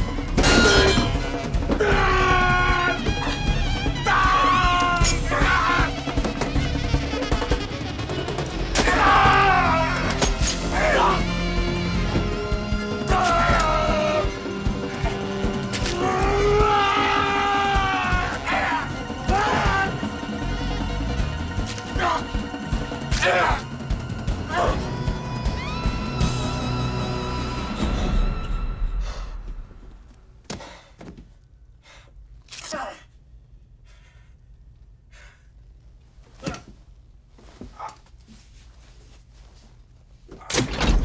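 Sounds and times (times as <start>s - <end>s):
man breathing heavily: 30.5s - 32.4s, 33.6s - 35.7s.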